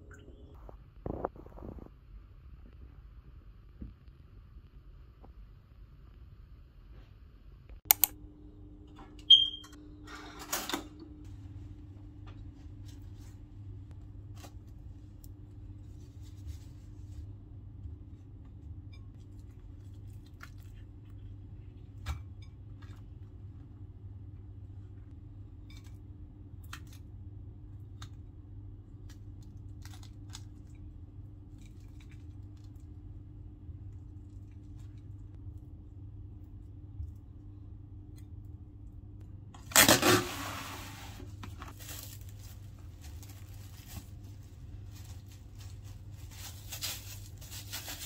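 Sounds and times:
appliance switch click: 7.9s - 8.2s
short high beep: 9.3s - 9.8s.

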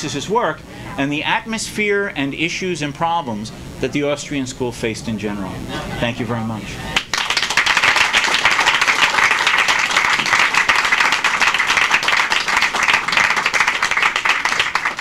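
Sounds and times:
audience applauding: 7.0s - 15.0s.

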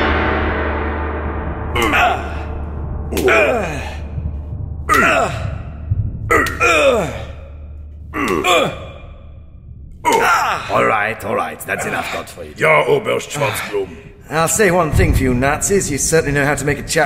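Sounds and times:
low hum: 0.0s - 12.1s
man crying out in pain: 1.8s - 2.5s, 3.1s - 4.2s, 4.9s - 9.2s.

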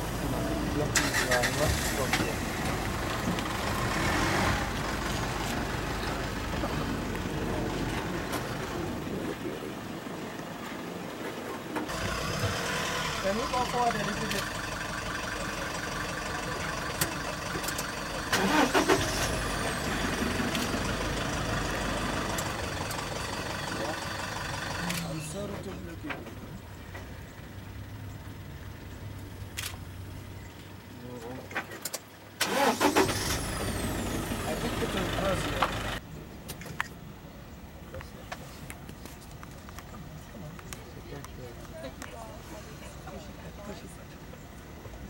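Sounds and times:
vehicle engine idling: 0.0s - 45.0s.

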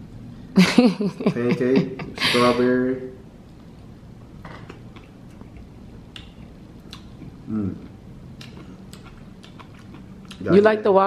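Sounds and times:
man chewing food: 3.4s - 10.6s.

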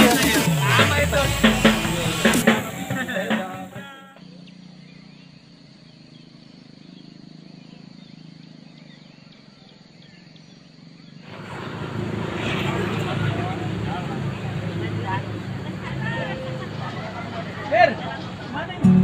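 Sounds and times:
people chatting outdoors: 0.0s - 19.0s.

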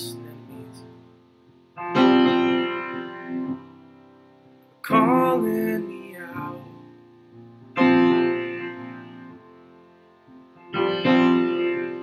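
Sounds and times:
guitar playing: 0.0s - 12.0s.

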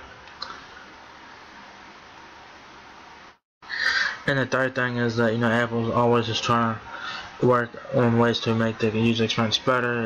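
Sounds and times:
sharp intake of breath: 3.6s - 4.2s, 6.9s - 7.4s.

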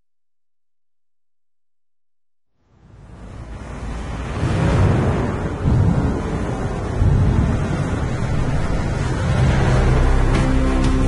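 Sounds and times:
low rumbling wash of noise: 2.6s - 11.0s.

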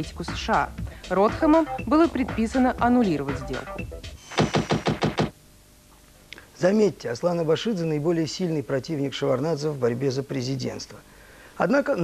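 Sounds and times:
rapid sharp knocks: 4.3s - 5.4s.

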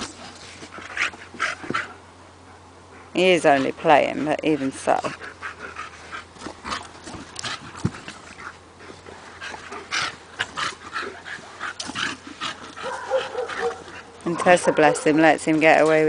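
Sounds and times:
dog panting: 0.0s - 15.9s.

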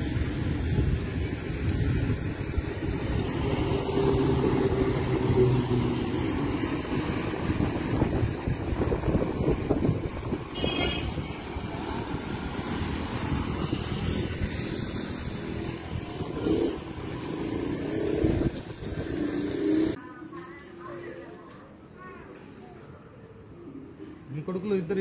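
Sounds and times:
wind on microphone: 0.0s - 20.0s
crickets chirping: 0.0s - 25.0s
traffic: 0.0s - 25.0s.

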